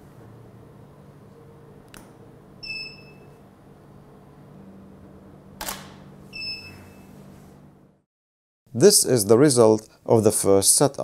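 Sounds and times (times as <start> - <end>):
short electronic beeps: 2.6 - 3.3, 6.3 - 7.1
camera shutter click: 5.6 - 6.0.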